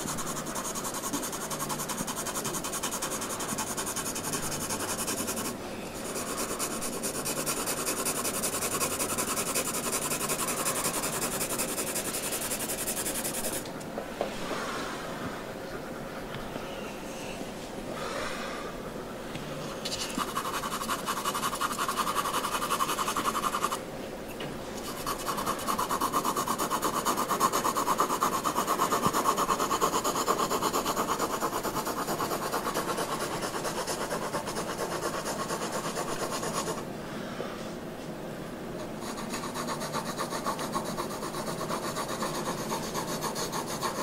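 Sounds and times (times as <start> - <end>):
pencil shading on paper: 0.0 - 13.6, 20.0 - 23.8, 24.8 - 36.8, 39.0 - 44.0.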